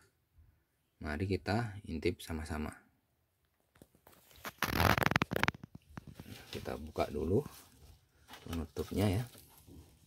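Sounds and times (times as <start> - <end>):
paper rustling and crackling: 3.8 - 10.0.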